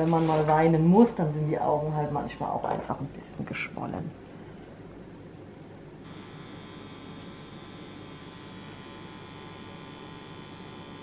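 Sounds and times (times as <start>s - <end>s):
make-up pen machine buzzing: 6.0s - 11.0s.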